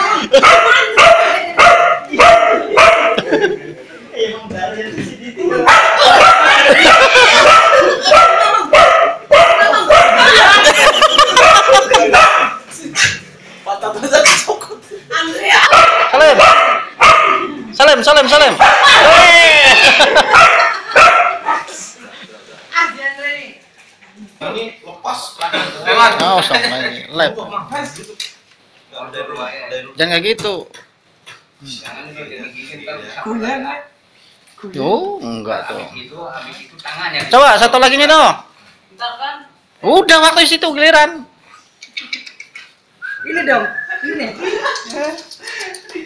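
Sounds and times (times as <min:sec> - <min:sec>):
dog barking: 0:00.3 - 0:03.2, 0:05.6 - 0:10.4, 0:11.3 - 0:13.2, 0:15.6 - 0:17.5, 0:18.6 - 0:19.3, 0:20.2 - 0:21.5.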